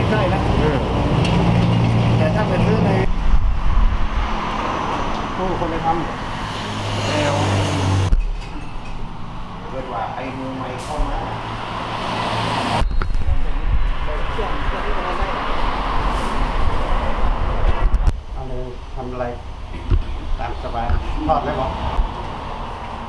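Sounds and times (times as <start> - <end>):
road traffic rumble: 0.0 - 23.0.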